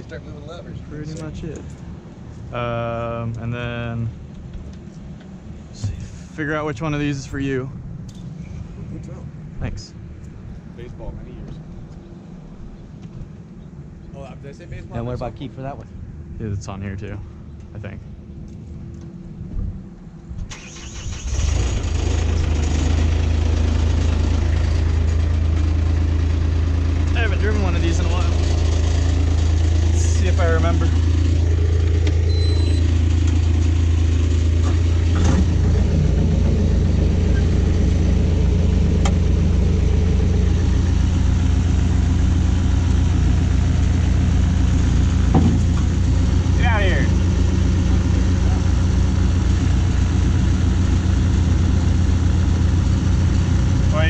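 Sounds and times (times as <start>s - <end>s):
diesel engine starting and idling: 20.4s - 54.0s.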